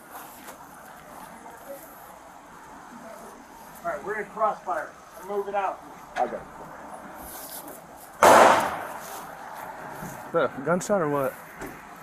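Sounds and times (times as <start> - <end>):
loud bang: 8.2 - 9.0.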